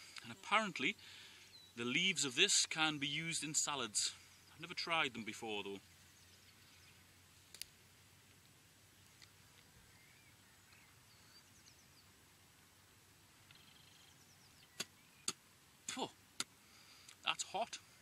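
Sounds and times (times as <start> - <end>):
distant birdsong chirping: 0.0 - 18.0.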